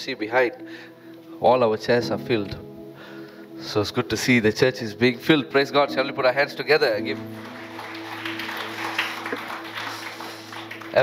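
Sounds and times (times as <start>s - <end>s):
soft background music: 0.0s - 11.0s
congregation applauding: 6.9s - 11.0s.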